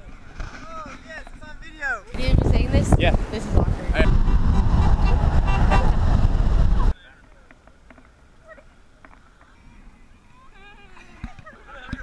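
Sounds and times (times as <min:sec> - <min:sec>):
voices: 0:00.0 - 0:04.1, 0:06.7 - 0:12.0.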